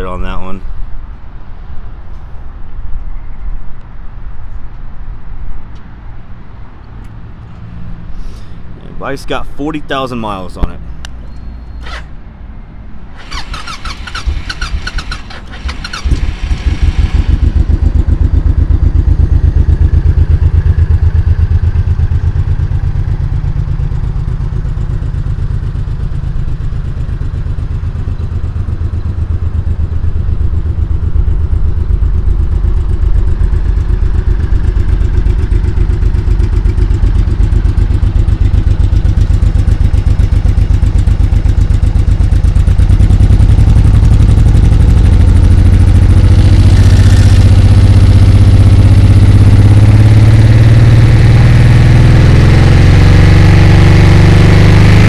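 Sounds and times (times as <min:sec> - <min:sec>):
motorcycle engine idling: 0:13.2 - 0:49.8.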